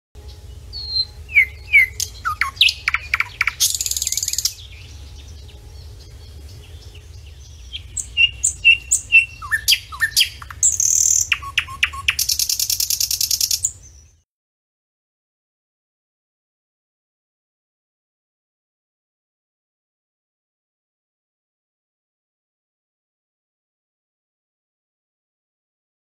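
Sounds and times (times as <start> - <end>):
low steady rumble: 0.2 - 14.1
songbirds chirping and trilling: 0.2 - 14.2.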